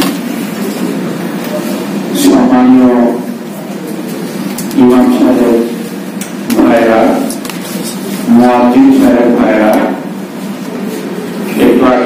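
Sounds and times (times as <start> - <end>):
room hum: 0.0 - 12.0
man's voice through microphone: 1.2 - 10.4, 11.4 - 12.0.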